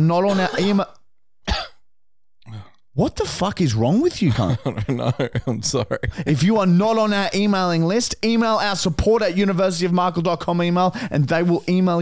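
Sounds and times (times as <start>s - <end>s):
man coughing: 0.3s - 1.8s
man clearing throat: 1.4s - 1.8s.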